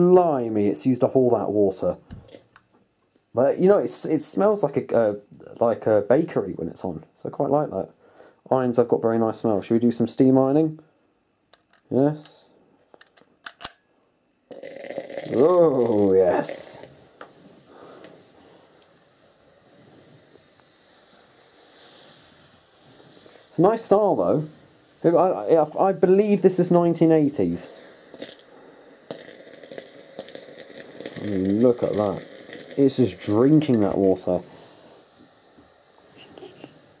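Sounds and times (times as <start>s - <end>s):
steam hissing: 14.5s - 37.0s.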